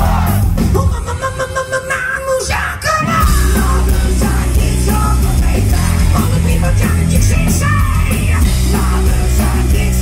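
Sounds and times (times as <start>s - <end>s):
hard rock band playing live: 0.0s - 10.0s
person yelling lead vocal: 0.0s - 10.0s.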